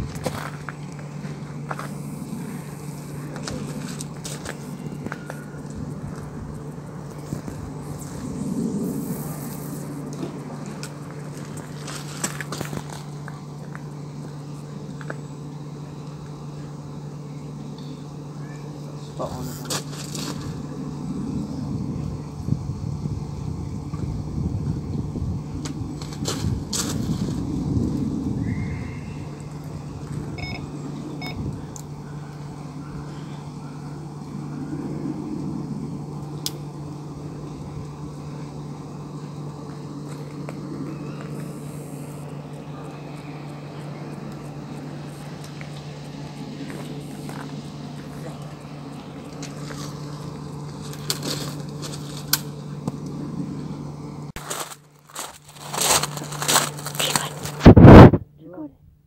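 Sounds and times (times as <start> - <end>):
outdoor background noise: 0.0 - 59.0
steady low hum: 0.0 - 59.0.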